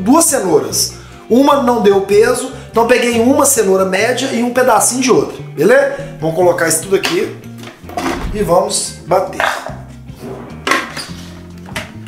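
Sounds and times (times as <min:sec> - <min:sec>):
background music: 0:00.0 - 0:12.0
plastic blender jar knocks: 0:10.6 - 0:11.0.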